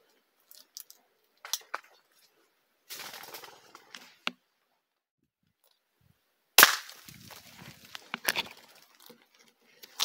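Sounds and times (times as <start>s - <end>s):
rifle shot crack: 6.6s - 7.0s.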